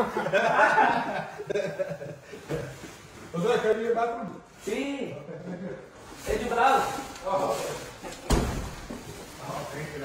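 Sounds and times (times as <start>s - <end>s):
heavy thump: 8.2s - 9.1s.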